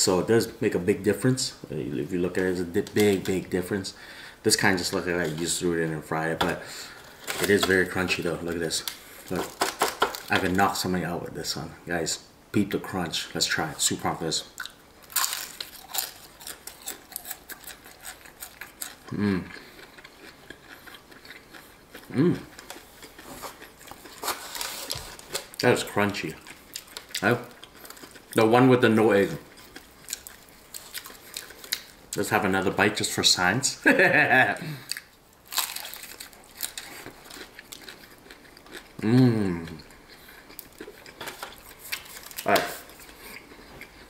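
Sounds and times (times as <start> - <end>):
crunchy food being chewed: 14.6 - 28.4, 29.2 - 32.0, 34.8 - 44.0.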